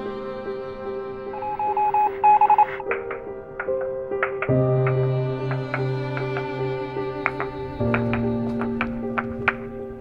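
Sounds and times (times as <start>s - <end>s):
soft background music: 0.0s - 10.0s
short electronic beeps: 1.3s - 2.8s.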